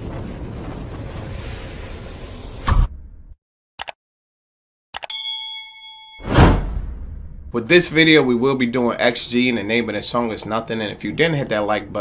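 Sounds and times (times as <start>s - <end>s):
bell ding: 5.0s - 6.7s
whoosh: 6.2s - 7.6s.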